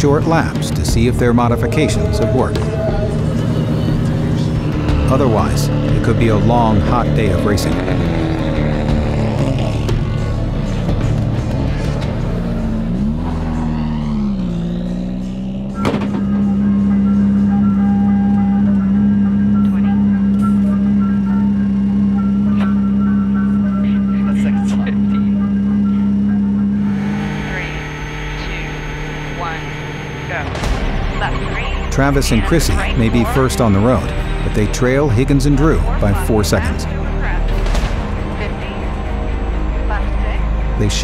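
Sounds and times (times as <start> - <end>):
background music: 0.0 - 41.0
car engine revving: 0.0 - 41.0.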